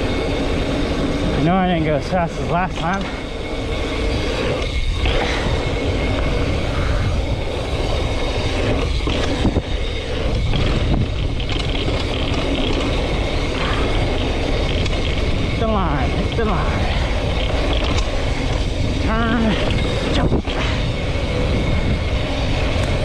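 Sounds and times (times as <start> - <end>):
mountain bike rattle: 0.0 - 23.0
tyres rolling over dirt trail: 0.0 - 23.0
wind rush on microphone: 0.0 - 23.0.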